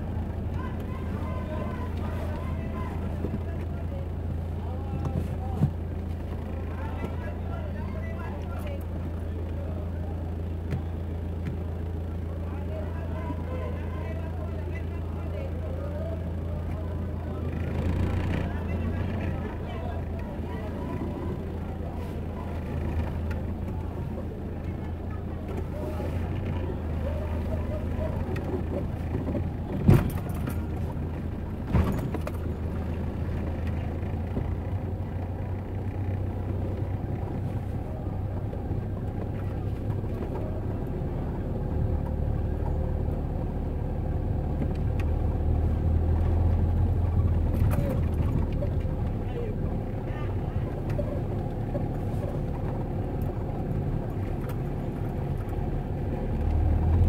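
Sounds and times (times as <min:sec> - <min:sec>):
vehicle engine humming: 0:00.0 - 0:57.0
voices of passersby: 0:00.0 - 0:57.0.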